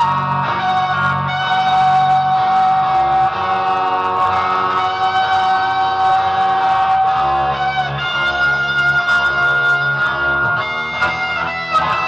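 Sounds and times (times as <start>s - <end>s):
electric guitar sustained lead note: 0.0s - 12.0s.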